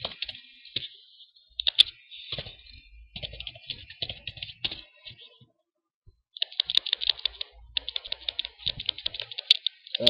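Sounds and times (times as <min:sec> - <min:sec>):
computer keys clicking: 0:00.0 - 0:00.9, 0:01.6 - 0:05.2, 0:06.3 - 0:10.0.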